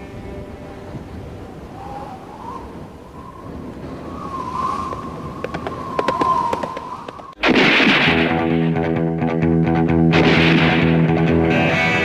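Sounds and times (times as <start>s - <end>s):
high wavering whistle tone: 0.0s - 7.4s
rushing wind-like noise: 0.0s - 8.8s.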